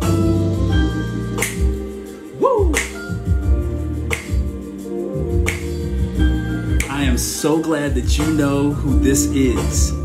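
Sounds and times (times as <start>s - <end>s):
slow r and b song: 0.0s - 10.0s
finger snap: 1.2s - 7.3s, 8.2s - 8.6s.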